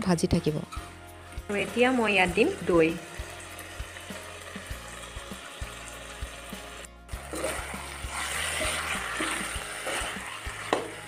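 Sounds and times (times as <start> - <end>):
meat sizzling in a metal pan: 1.5 - 11.0.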